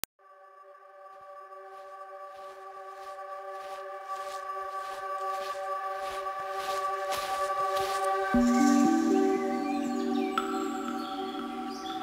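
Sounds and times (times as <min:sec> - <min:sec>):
held synth chord: 0:07.8 - 0:12.0.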